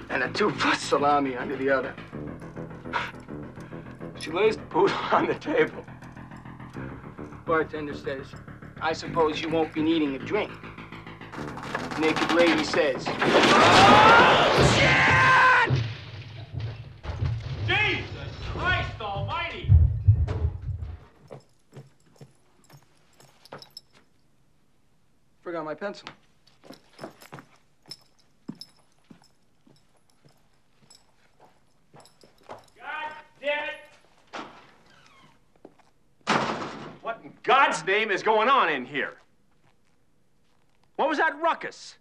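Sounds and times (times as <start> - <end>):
door banging: 0.0 - 21.2, 36.2 - 37.1
heavy thuds: 0.0 - 23.9
loud crash: 6.5 - 19.0, 36.3 - 37.0.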